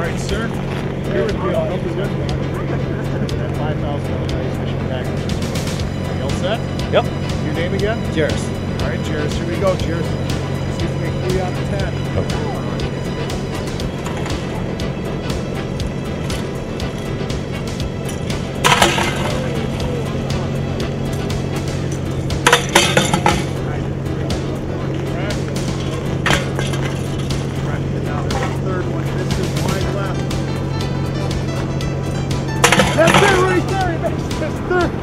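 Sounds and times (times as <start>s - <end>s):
background music: 0.0s - 35.0s
steady low hum: 0.0s - 35.0s.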